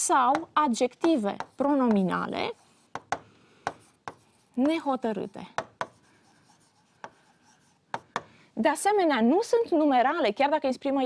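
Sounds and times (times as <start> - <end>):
stylus taps: 0.3 - 2.0, 7.9 - 8.4
stylus scratching on screen: 0.3 - 8.2.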